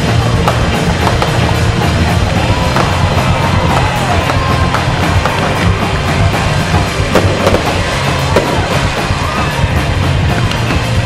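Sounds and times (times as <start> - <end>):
fireworks bangs and crackles: 0.0 - 9.8
loud music with heavy bass: 0.0 - 11.0.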